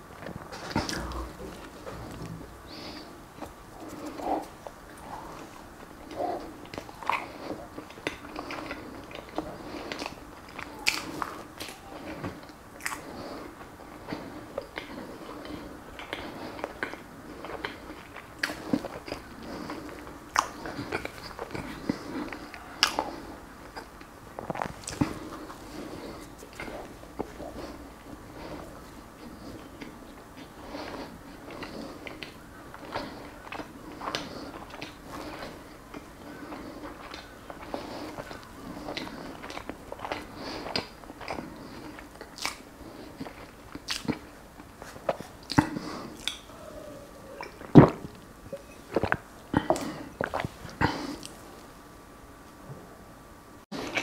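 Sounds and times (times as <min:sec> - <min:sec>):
person chewing: 0:00.3 - 0:51.7.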